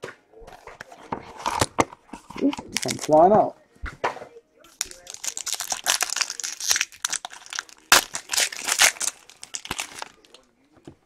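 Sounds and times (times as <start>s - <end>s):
foil wrapper crinkling and tearing: 2.3s - 3.2s, 4.7s - 10.5s.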